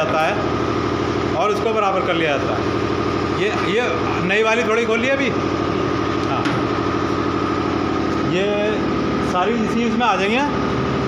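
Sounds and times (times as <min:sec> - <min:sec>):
machine motor running: 0:00.0 - 0:11.0.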